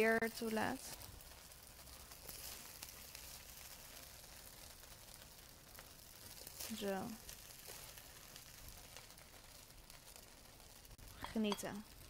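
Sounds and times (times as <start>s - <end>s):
faint sizzle in a wok: 0.0s - 12.0s.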